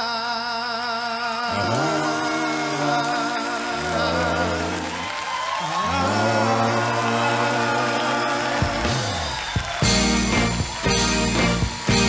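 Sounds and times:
soul band held chord: 0:01.5 - 0:12.0.

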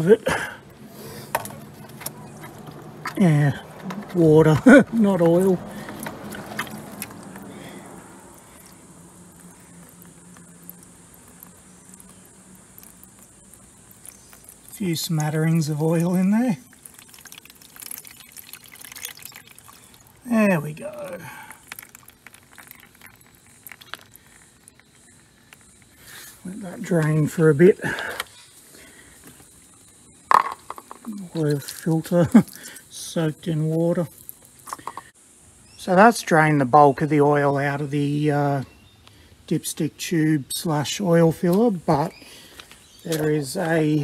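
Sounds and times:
water trickling onto plastic: 0:01.2 - 0:27.2, 0:34.0 - 0:35.0.

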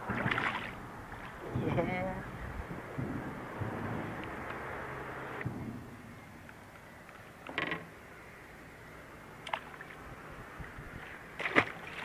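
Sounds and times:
rustling and splashing: 0:00.0 - 0:04.9, 0:09.4 - 0:12.0.

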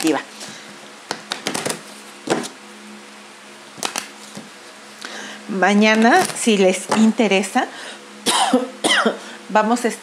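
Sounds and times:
faint steady hum: 0:00.0 - 0:10.0
cards shuffled and tapped: 0:01.1 - 0:02.6, 0:03.8 - 0:04.5.

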